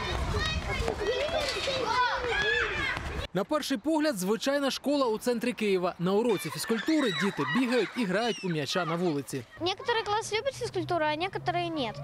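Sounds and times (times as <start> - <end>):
children calling and chattering: 0.0 - 3.3, 5.6 - 12.0.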